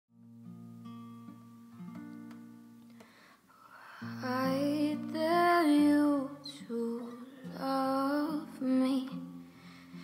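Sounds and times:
quiet acoustic guitar picking: 0.1 - 3.0, 4.0 - 10.0.

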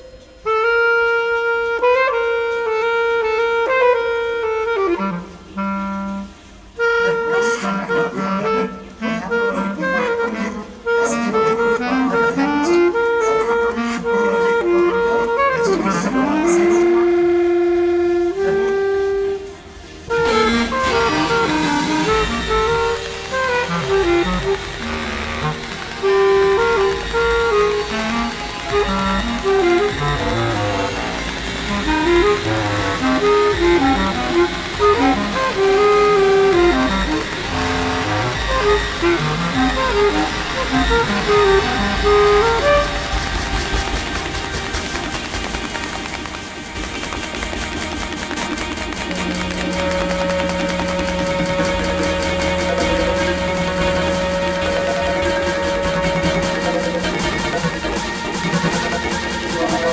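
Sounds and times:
bass clarinet with electronics: 0.0 - 59.9.

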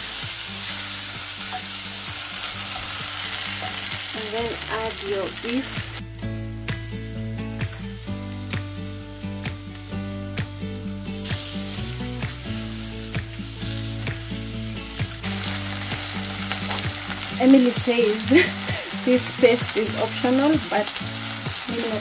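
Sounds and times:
meat sizzling in a pan: 0.0 - 6.0, 7.6 - 22.0
background music with steady beat: 0.0 - 22.0.

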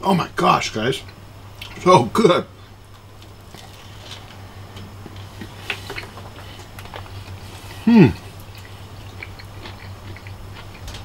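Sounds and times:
low steady hum: 0.0 - 11.0
man chewing food: 1.0 - 1.8, 2.6 - 11.0.

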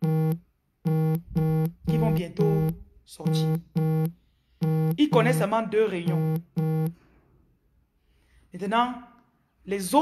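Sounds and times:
low buzzy electronic beeps: 0.0 - 5.3, 6.1 - 7.0.

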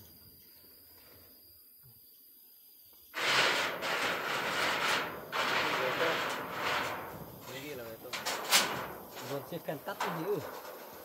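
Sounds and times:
metal sheet scraping over wood: 3.2 - 11.0.

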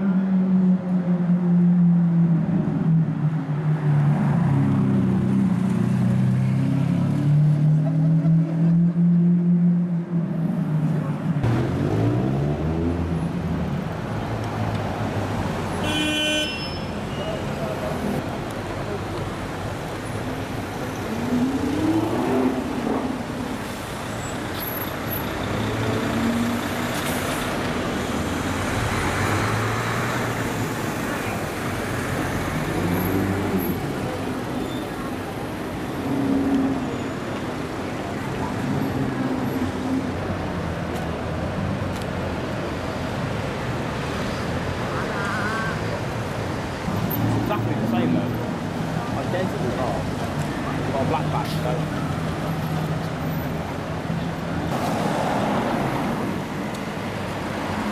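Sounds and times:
car engines accelerating: 0.0 - 15.7, 17.6 - 44.8
city street traffic: 0.0 - 57.9
car horn toot: 15.8 - 17.3.

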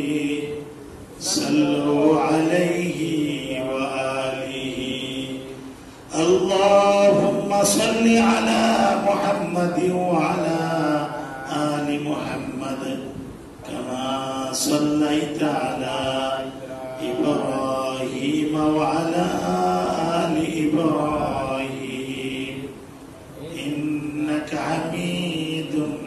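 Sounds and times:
man chanting into a microphone: 0.0 - 26.0.

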